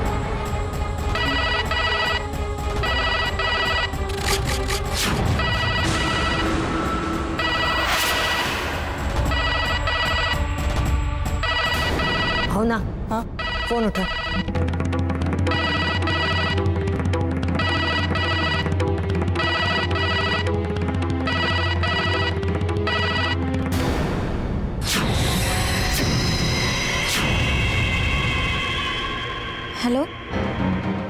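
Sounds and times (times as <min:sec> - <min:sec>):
background music: 0:00.0 - 0:31.0
electronic telephone ringing: 0:01.1 - 0:04.1, 0:05.4 - 0:06.5, 0:07.4 - 0:08.4, 0:09.2 - 0:10.4, 0:11.4 - 0:12.5, 0:13.4 - 0:14.6, 0:15.4 - 0:16.8, 0:17.4 - 0:23.5.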